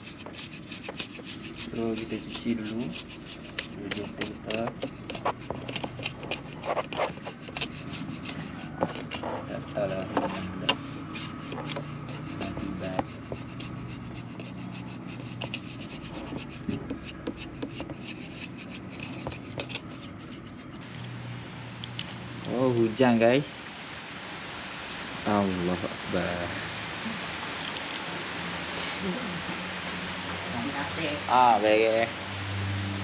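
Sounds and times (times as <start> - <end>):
brush scrubbing radiator fins: 0.0 - 20.8
steady low hum: 0.0 - 33.0.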